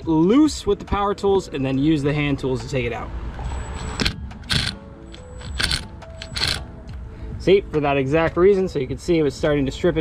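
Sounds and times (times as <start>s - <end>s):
impact driver rattling and whining: 3.8s - 6.6s.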